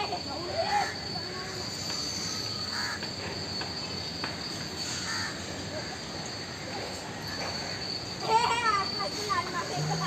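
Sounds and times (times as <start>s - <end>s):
distant children's voices: 0.0s - 3.1s, 5.1s - 10.0s
high-pitched insect drone: 0.0s - 10.0s.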